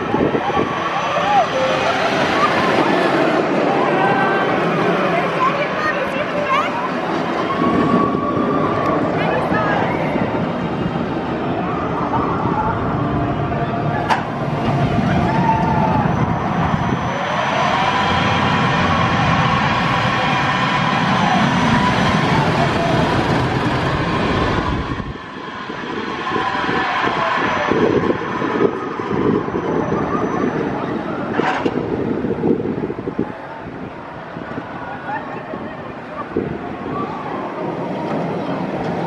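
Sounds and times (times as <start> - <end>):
roller coaster rumbling on track: 0.0 - 39.0.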